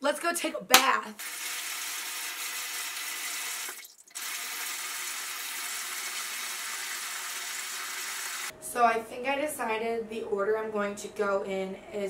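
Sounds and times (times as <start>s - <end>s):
faucet water pouring into tub: 1.2s - 8.5s.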